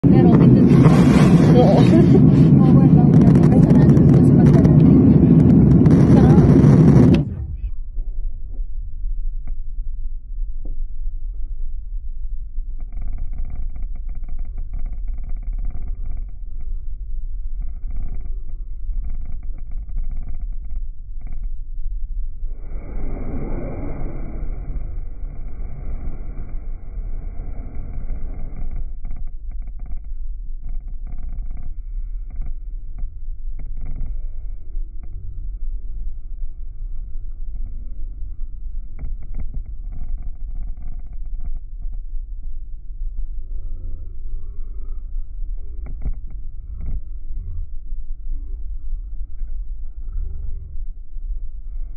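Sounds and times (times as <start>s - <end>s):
low rumble of engines and airflow: 0.0s - 51.9s.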